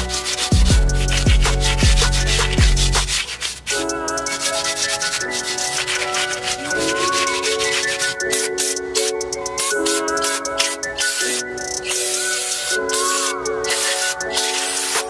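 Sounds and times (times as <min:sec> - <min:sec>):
scuff pad scratching metal: 0:00.0 - 0:08.8, 0:09.6 - 0:15.0
background music: 0:00.0 - 0:15.0.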